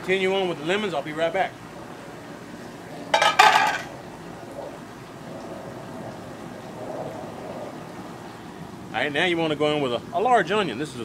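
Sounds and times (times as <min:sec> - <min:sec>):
splash and clatter at stockpot: 0:03.1 - 0:03.9.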